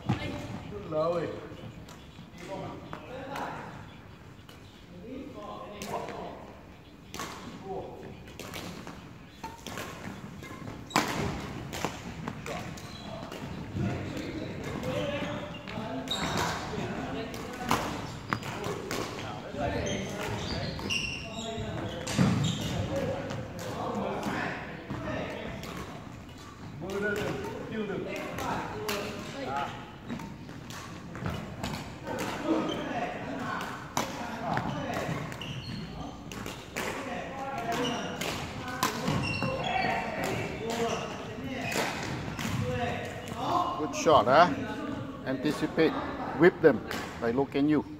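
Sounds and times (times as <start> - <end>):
rackets hitting shuttlecocks: 7.0 - 35.4, 36.0 - 43.6.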